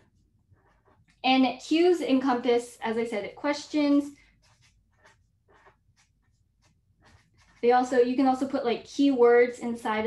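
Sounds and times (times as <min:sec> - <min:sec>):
pen scratching on paper: 0:00.0 - 0:10.0.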